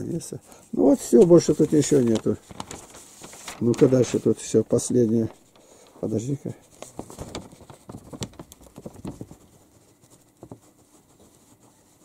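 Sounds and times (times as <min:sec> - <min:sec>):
newspaper crackling: 0:00.5 - 0:12.0.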